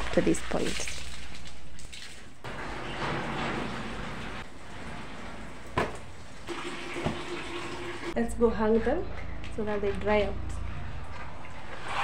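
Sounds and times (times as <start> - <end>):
water pouring and dripping: 0.0 - 8.2.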